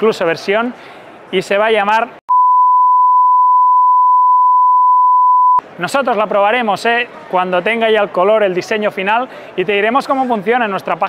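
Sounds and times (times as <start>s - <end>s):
censor bleep: 2.3s - 5.6s.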